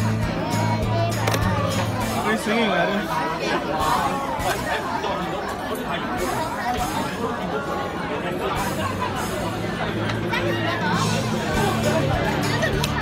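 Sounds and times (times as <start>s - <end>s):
indistinct chatter: 0.0s - 13.0s.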